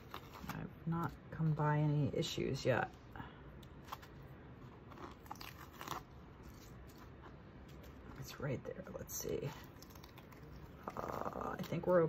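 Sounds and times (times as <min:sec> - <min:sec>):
paper tape crinkling: 0:00.0 - 0:01.1, 0:03.8 - 0:08.4, 0:09.4 - 0:12.0.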